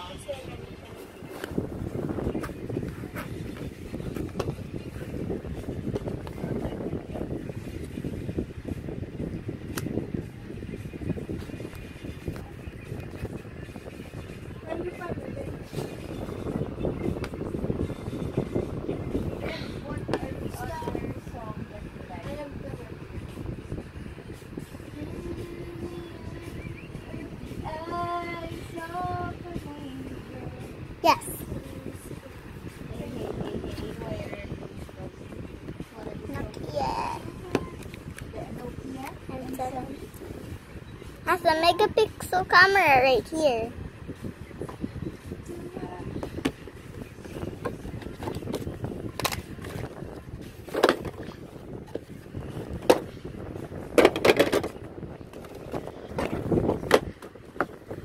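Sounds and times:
high voice singing: 24.9s - 32.4s.

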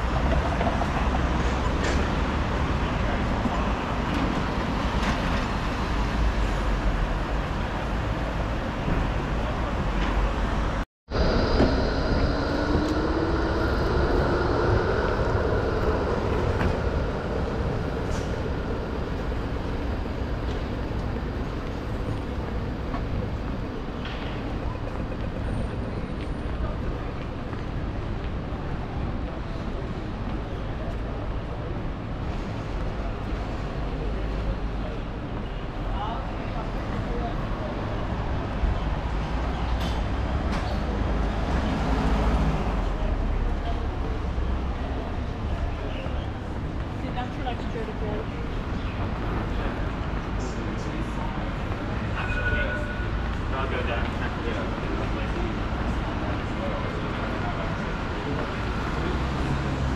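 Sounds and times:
low traffic rumble: 0.0s - 59.9s
tram motor whine: 11.1s - 27.8s.

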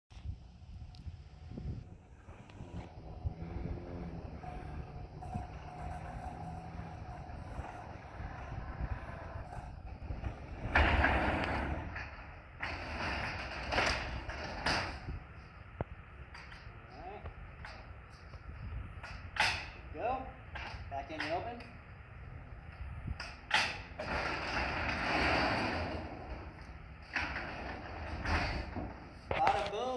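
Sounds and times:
garage door opener motor: 2.2s - 12.0s
screen door rattling: 2.3s - 15.2s, 23.3s - 29.2s.

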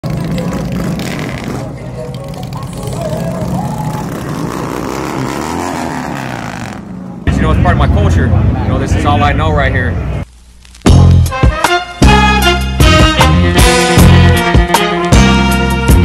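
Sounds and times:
motorcycle engine running: 0.0s - 7.3s
voices: 0.1s - 5.3s
man talking: 7.3s - 10.0s
music: 10.8s - 16.0s.

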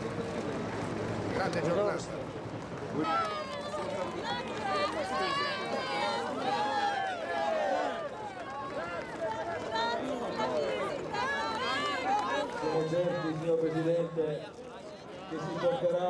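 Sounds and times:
crowd calling out and talking: 0.0s - 16.0s.

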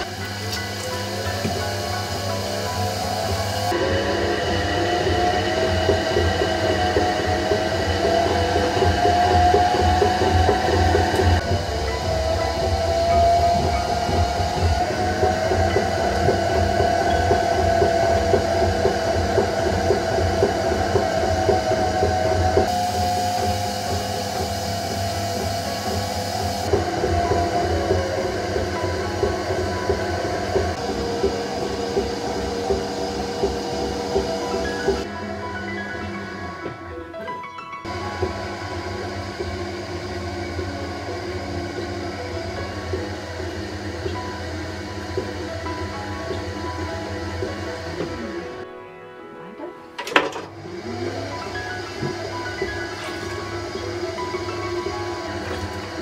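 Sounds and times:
potter's wheel motor hum: 0.0s - 37.0s, 37.8s - 48.7s, 50.0s - 56.0s.

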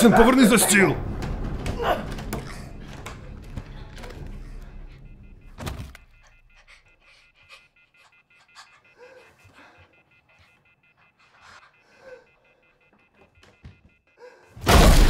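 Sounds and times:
faint steady score tone: 0.0s - 14.9s
man breathing hard: 2.4s - 13.1s.

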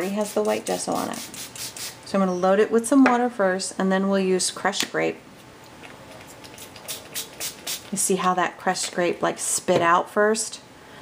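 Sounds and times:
spray bottle hissing: 6.5s - 8.0s.

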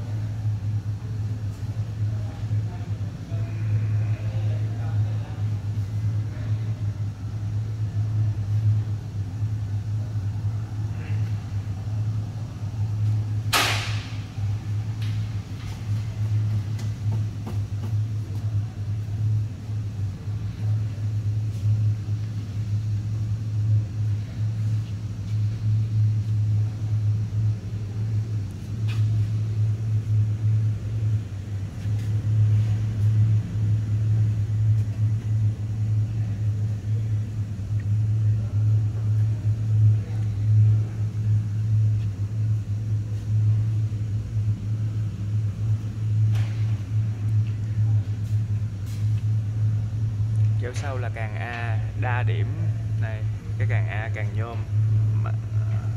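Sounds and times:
steady low rumble: 0.0s - 55.9s.

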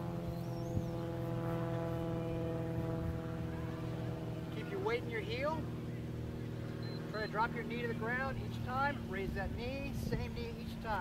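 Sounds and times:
steady mechanical drone: 0.0s - 11.0s.

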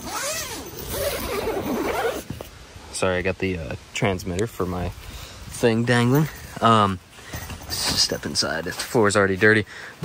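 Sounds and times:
nylon fabric rustling: 0.0s - 2.4s
tent door zipper: 0.0s - 2.5s.

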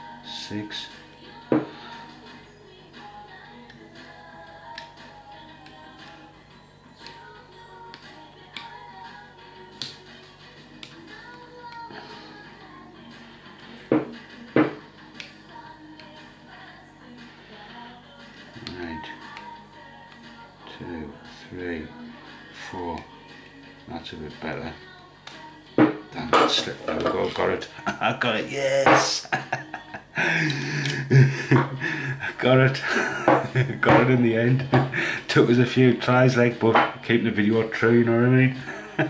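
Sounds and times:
background music: 0.0s - 39.0s.

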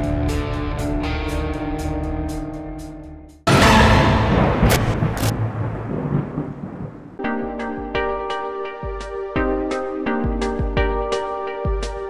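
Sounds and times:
sharp crack: 3.5s - 7.2s
thunder-like boom: 3.5s - 7.2s.

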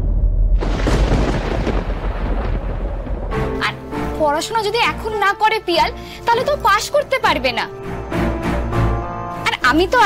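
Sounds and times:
thunder-like rumble: 0.0s - 3.8s.

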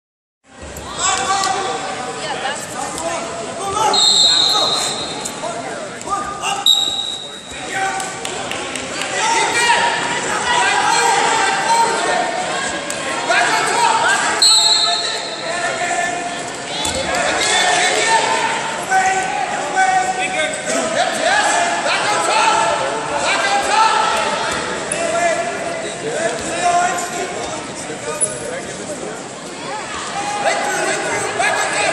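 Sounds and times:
people talking and calling out: 0.5s - 31.9s
hall chatter: 0.6s - 31.9s
referee's whistle blasts: 3.9s - 5.3s, 6.6s - 7.6s, 14.4s - 15.4s.

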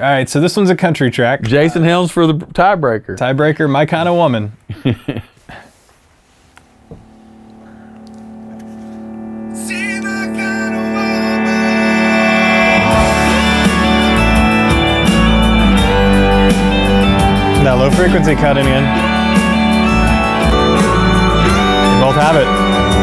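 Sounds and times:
country song over loudspeakers: 9.5s - 23.0s
fiddle with vibrato: 9.6s - 23.0s.

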